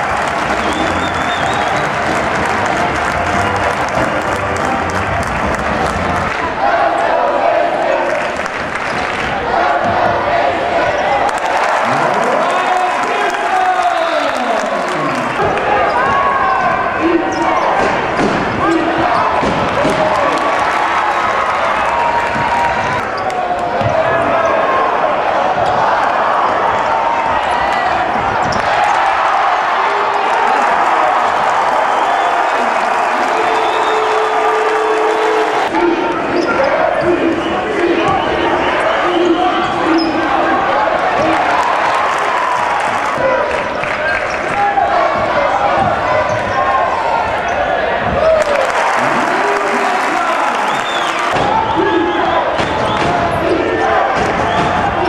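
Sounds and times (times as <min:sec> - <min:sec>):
arena crowd with voices: 0:00.0 - 0:55.0.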